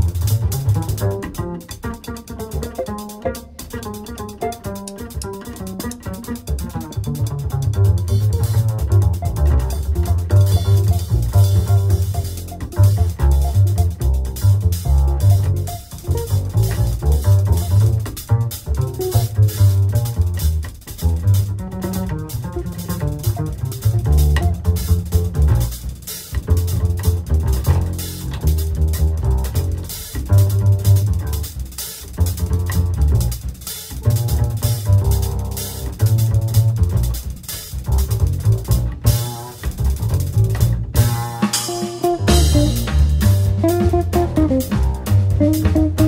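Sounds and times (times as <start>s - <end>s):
drum kit cymbals and drums: 0.0s - 46.0s
upright bass line: 0.0s - 46.0s.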